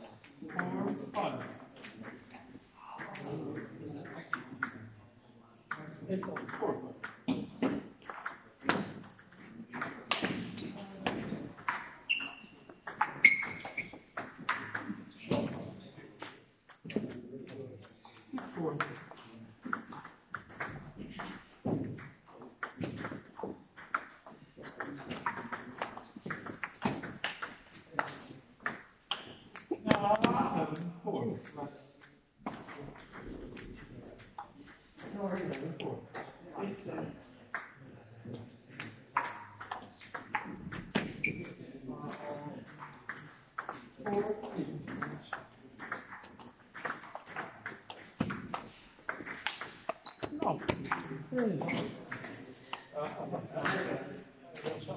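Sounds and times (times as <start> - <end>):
distant table tennis rallies: 5.7 - 36.3, 37.5 - 53.9
table tennis ball clicking: 46.8 - 51.1.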